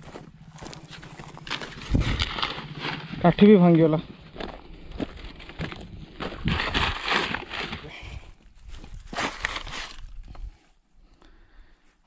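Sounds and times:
footsteps on stone chips: 0:00.0 - 0:07.9.

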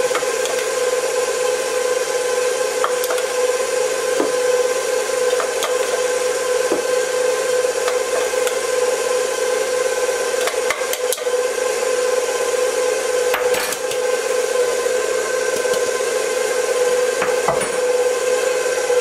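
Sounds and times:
stand mixer motor running: 0:00.0 - 0:19.0.

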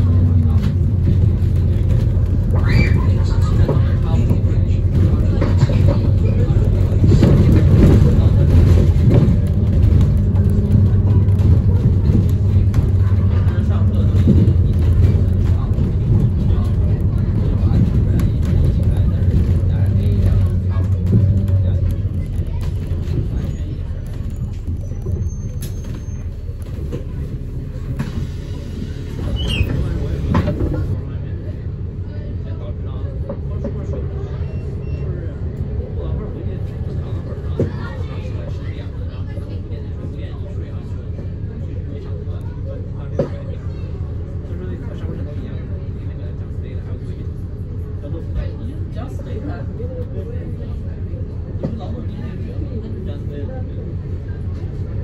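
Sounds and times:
bus engine and road noise: 0:00.0 - 0:55.0
faint passenger voices: 0:00.0 - 0:55.0.

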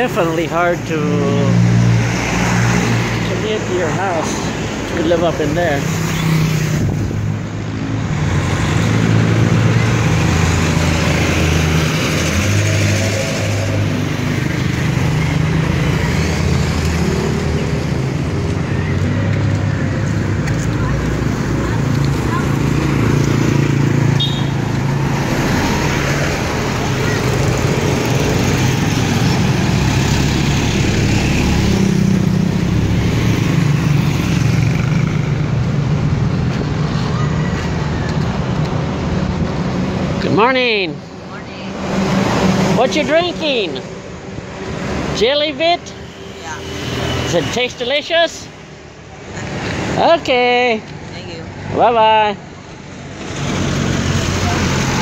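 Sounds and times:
motorcycles passing close by: 0:00.0 - 0:43.8.

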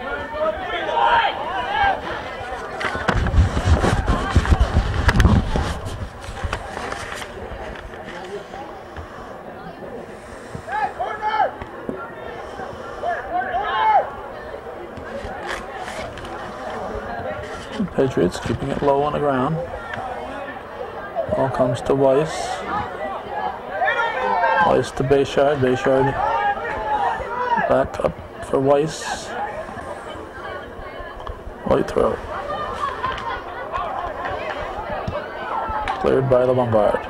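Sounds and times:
players shouting: 0:00.0 - 0:05.6, 0:10.5 - 0:17.2, 0:18.8 - 0:28.0.

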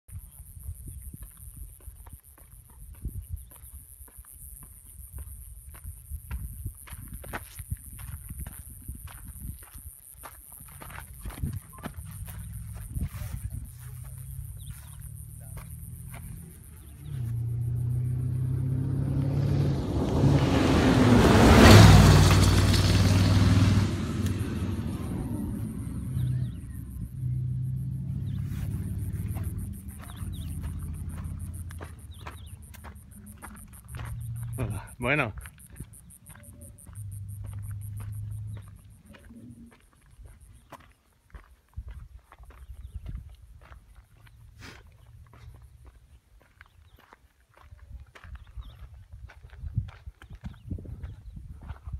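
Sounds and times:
tyres on gravel rush: 0:07.4 - 0:41.6
race truck engine passing: 0:13.6 - 0:39.6
insects buzzing: 0:24.2 - 0:39.0.

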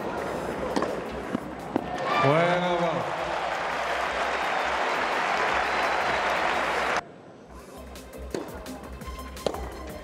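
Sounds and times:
tennis court sound: 0:00.0 - 0:02.2, 0:08.2 - 0:10.0
crowd applauding: 0:02.6 - 0:07.0.

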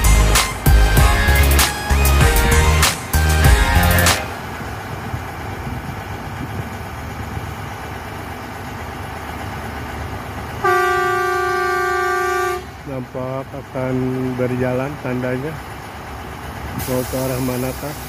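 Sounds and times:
horn blast: 0:00.0 - 0:04.6, 0:10.6 - 0:12.9
rail machine rumbling: 0:00.0 - 0:18.0.

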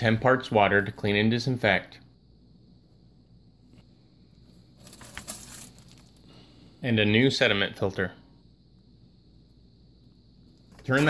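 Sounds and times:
plastic jug crinkling: 0:04.7 - 0:06.3.

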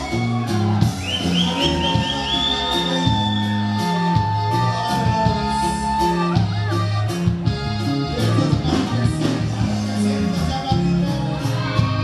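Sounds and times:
high lead melody: 0:00.0 - 0:12.0
norteno band playing: 0:00.0 - 0:12.0
walking bass: 0:00.0 - 0:12.0.

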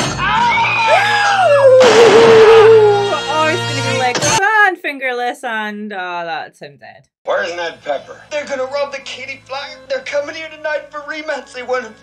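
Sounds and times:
man screaming in pain: 0:00.3 - 0:03.2.

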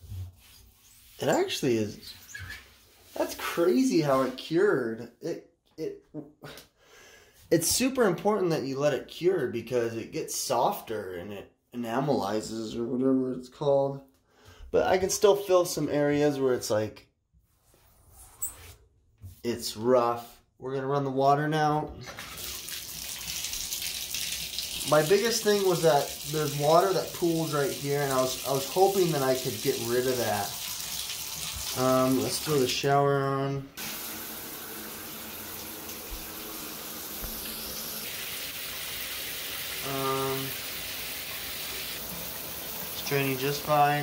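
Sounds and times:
shower spraying into bathtub: 0:00.3 - 0:04.6, 0:22.0 - 0:33.2, 0:33.8 - 0:44.0.

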